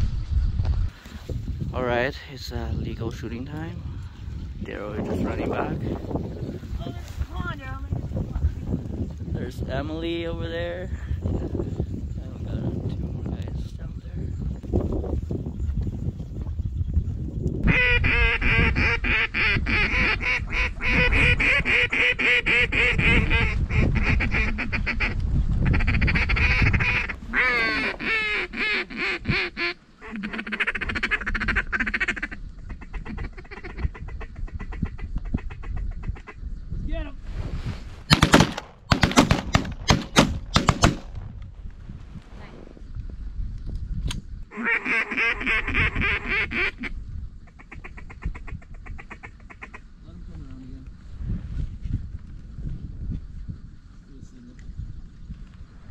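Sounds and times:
geese honking: 17.7s - 33.8s
ducks quacking: 17.7s - 36.4s, 44.5s - 46.9s
shotgun shots: 38.1s - 41.2s.

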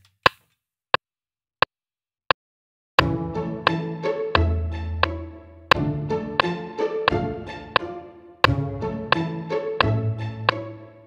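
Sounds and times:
metronome clicks: 5.0s - 10.6s.

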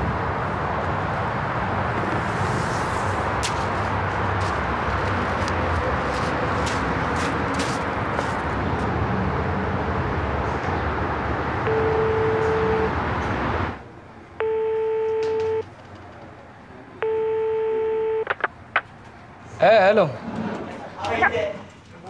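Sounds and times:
outdoor street noise: 0.0s - 22.0s
telephone ringback tone: 11.6s - 13.0s, 14.4s - 15.6s, 17.0s - 18.4s
sharp clicks: 18.2s - 19.2s.

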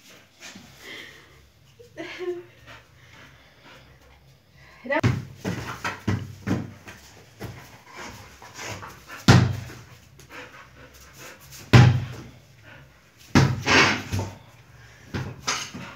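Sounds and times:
dog panting: 2.4s - 4.5s, 7.3s - 13.4s.

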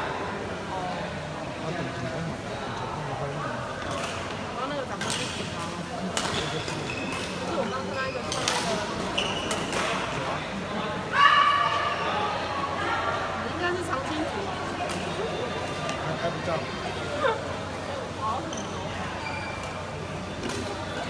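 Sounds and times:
background chatter: 0.0s - 21.0s
shoes squeaking on court floor: 6.3s - 10.0s, 18.4s - 21.0s
loud shout: 11.1s - 13.1s.

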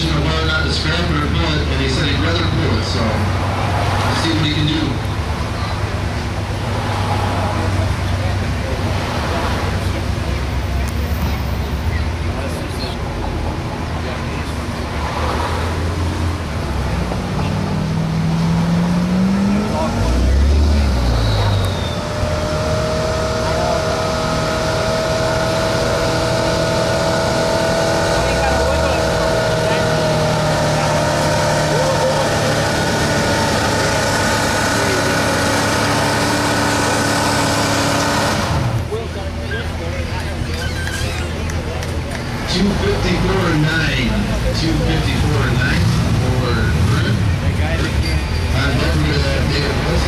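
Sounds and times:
pickup engine revving under load: 0.0s - 50.0s.

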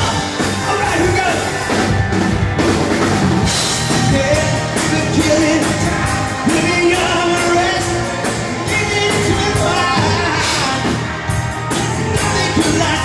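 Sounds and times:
drum kit: 0.0s - 13.0s
electric guitars: 0.0s - 13.0s
keyboard: 0.0s - 13.0s.

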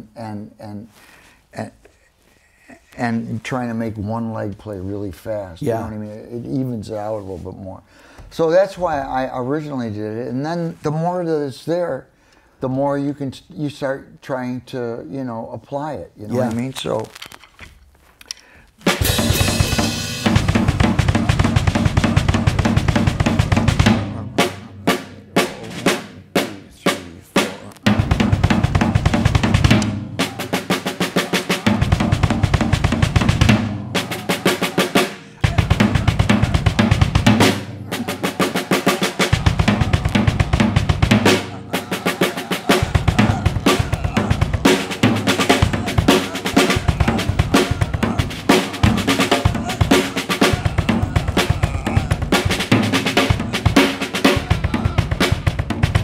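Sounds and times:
drum kit with double bass pedal: 18.8s - 56.0s.

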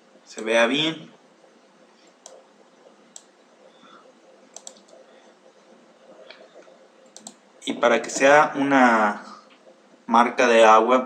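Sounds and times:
faint room noise: 0.0s - 11.0s
computer mouse clicks: 2.0s - 2.4s, 3.1s - 3.4s, 4.4s - 5.0s, 6.1s - 7.4s.

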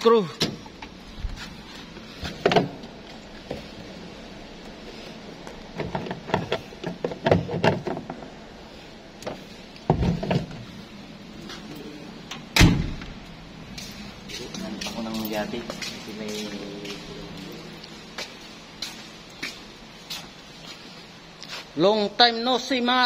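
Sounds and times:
truck door knocks and clunks: 9.9s - 10.6s, 12.6s - 13.2s
loud thump: 12.6s - 13.2s.

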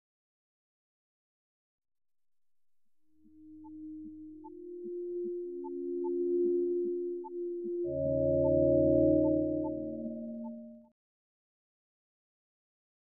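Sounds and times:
steady pure electronic tones: 3.2s - 10.9s
short electronic blips: 4.5s - 10.9s.

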